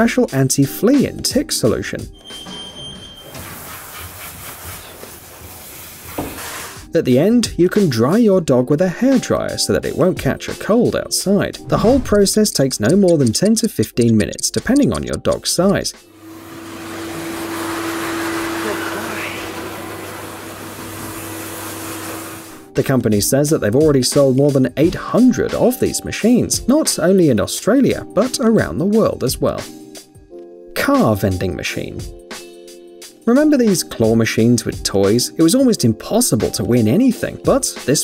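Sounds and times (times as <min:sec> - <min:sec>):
hose hissing: 0:16.1 - 0:22.6.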